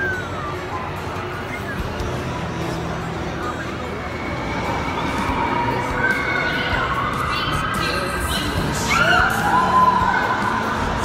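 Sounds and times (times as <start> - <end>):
people screaming on a ride: 0.0 - 0.7, 4.2 - 8.1, 8.7 - 11.0
crowd hubbub: 0.0 - 11.0.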